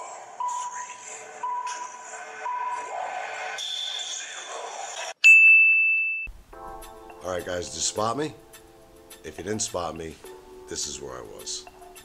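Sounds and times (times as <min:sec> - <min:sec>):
long steady beep: 0:00.4 - 0:02.9
background music: 0:06.3 - 0:12.0.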